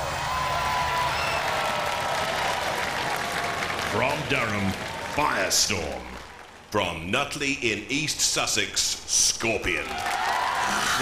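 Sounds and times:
audience applauding: 0.0s - 6.9s, 9.7s - 11.0s.

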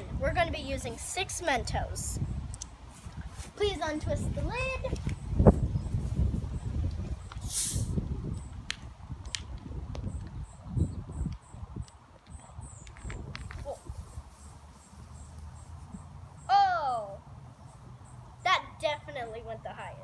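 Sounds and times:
gas hissing from bottle cap: 7.4s - 8.0s.

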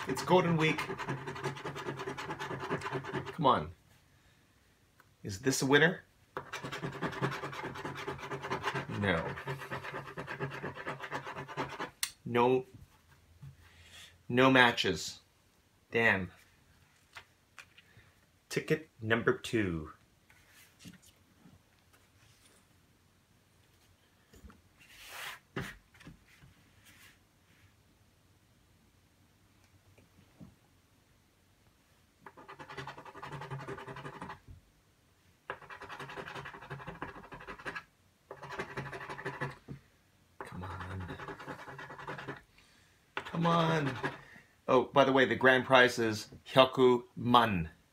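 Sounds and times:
coin scratching paper ticket: 0.0s - 3.4s, 6.4s - 11.9s, 32.2s - 34.4s, 35.5s - 39.6s, 40.4s - 42.4s, 43.2s - 44.2s.

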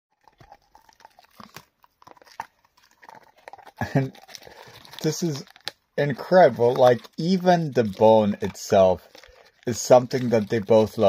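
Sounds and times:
dog gnawing on a bone: 0.1s - 11.0s.

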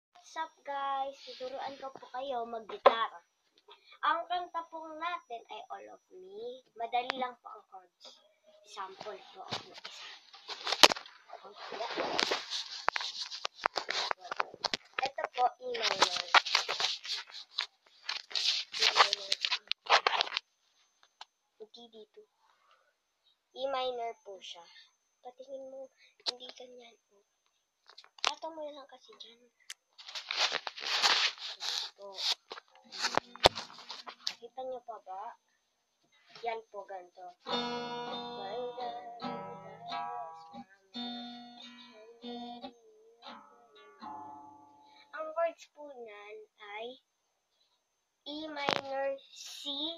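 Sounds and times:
handling rustle: 9.0s - 20.5s, 30.0s - 34.4s.

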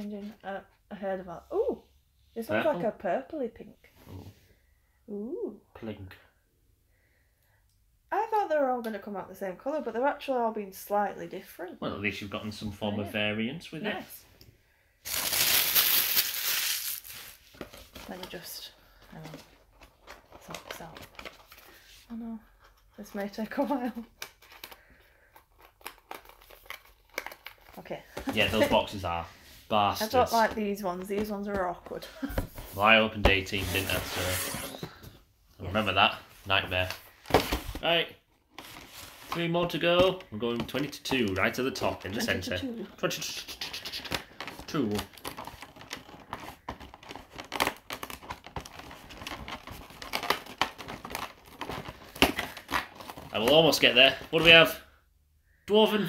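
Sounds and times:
cardboard crinkling and clicking: 44.0s - 54.2s.

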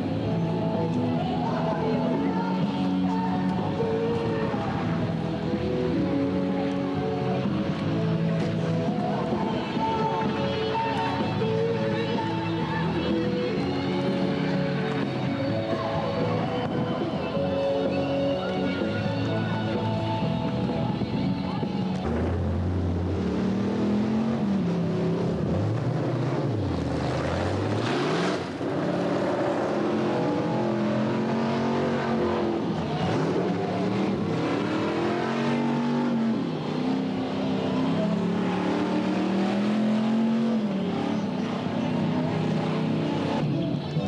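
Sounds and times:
car engine revving hard: 22.1s - 43.4s.

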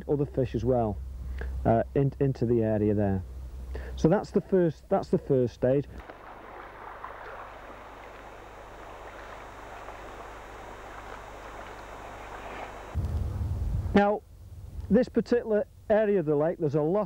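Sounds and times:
choppy lake water: 5.9s - 13.0s
wind buffeting microphone: 6.0s - 14.0s.

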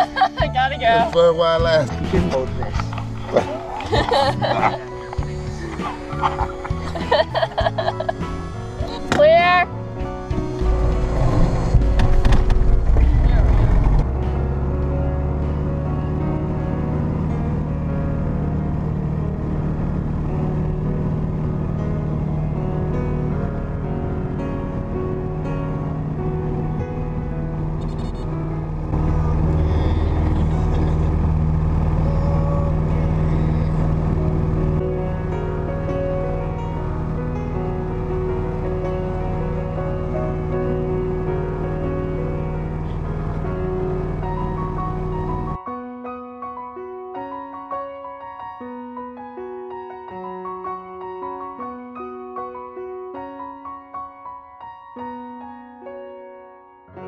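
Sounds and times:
background music: 0.0s - 51.8s
propeller plane engine drone: 1.9s - 45.6s.

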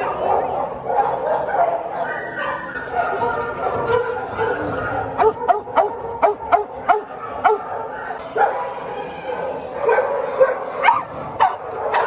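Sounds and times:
din of dogs barking: 0.0s - 12.0s
sharp dog barks: 3.8s - 7.8s, 9.9s - 12.0s.

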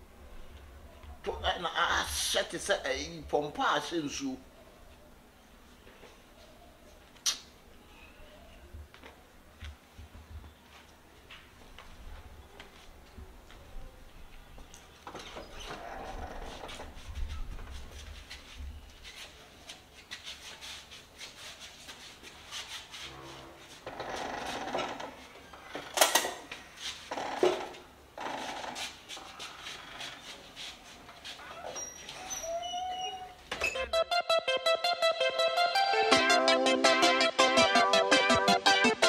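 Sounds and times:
light footsteps on tiled floor: 8.5s - 25.7s, 28.3s - 33.6s
door being opened: 15.1s - 17.0s, 31.5s - 34.0s
door hinges squeaking: 15.1s - 17.0s, 23.8s - 30.2s, 31.4s - 34.0s.

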